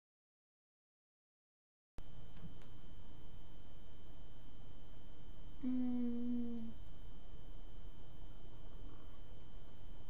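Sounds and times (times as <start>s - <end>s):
woman humming: 5.6s - 6.8s.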